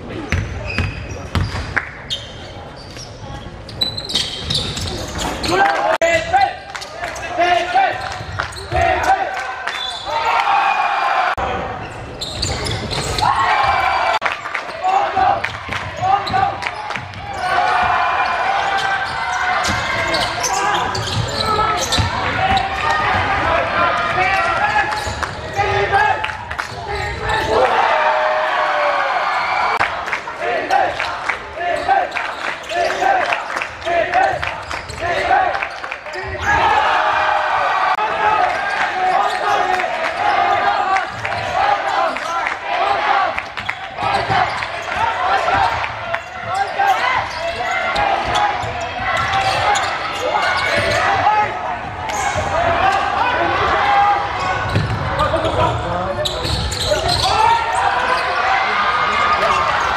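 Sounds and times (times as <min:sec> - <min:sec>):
basketball bouncing on wooden court: 0:00.3 - 0:01.6, 0:20.9 - 0:23.4, 0:54.6 - 0:55.1.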